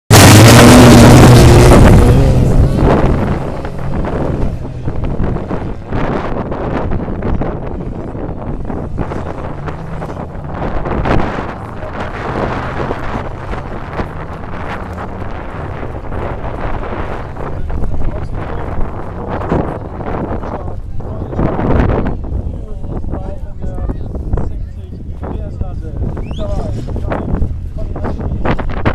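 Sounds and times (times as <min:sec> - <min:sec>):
stock car engines racing: 0:00.1 - 0:28.9
wind buffeting microphone: 0:00.2 - 0:28.9.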